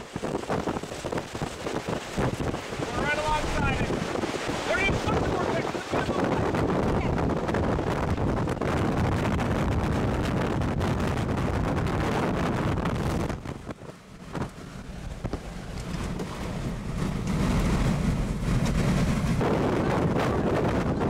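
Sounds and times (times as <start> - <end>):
strong wind on microphone: 0.0 - 21.0.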